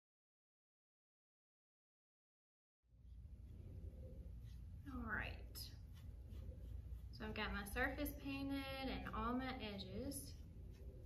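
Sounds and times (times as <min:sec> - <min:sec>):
low steady hum: 0:02.9 - 0:11.0.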